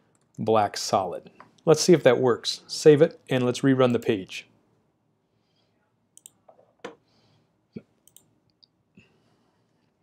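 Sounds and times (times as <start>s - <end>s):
computer mouse clicks: 6.2s - 7.0s, 8.0s - 8.7s.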